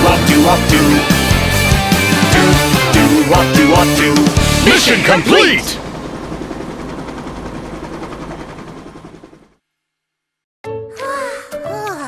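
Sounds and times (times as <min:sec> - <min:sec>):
cartoon helicopter rotor chopping: 0:00.0 - 0:09.6.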